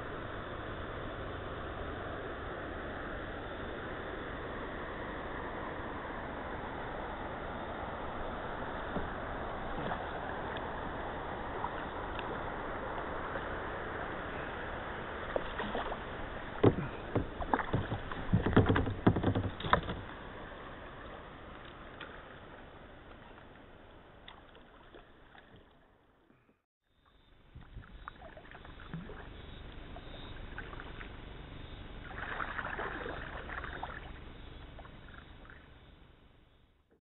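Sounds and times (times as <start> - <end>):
paddle splashing water: 8.6 - 26.6, 27.5 - 31.3, 32.0 - 35.8
paddle knocking kayak hull: 15.3 - 20.2.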